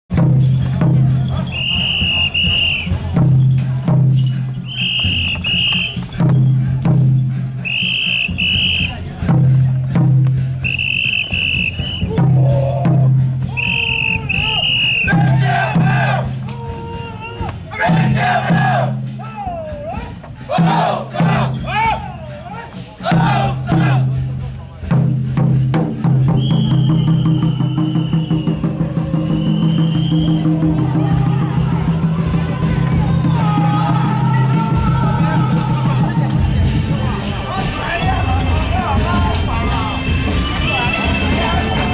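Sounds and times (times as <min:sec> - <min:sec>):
drums playing fast beat: 0:00.1 - 0:41.9
shrill whistle blasts: 0:01.4 - 0:03.0, 0:04.6 - 0:06.5, 0:07.6 - 0:09.0, 0:10.6 - 0:12.2, 0:13.5 - 0:15.2, 0:26.3 - 0:30.5
group shouting together: 0:15.1 - 0:24.1.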